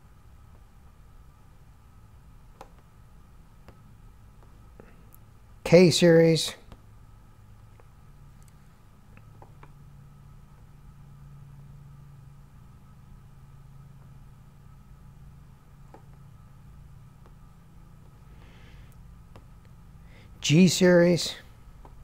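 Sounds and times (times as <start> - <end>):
low steady hum: 0.0 - 22.0
computer mouse clicks: 2.5 - 2.9
soft breath: 18.1 - 19.1, 19.9 - 20.4.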